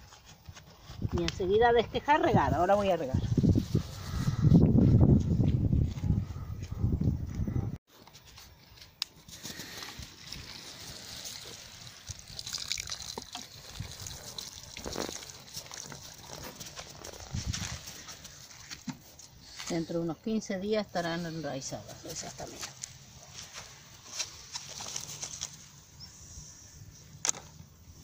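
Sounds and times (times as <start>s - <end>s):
watering can sprinkling on soil: 9.0s - 19.0s.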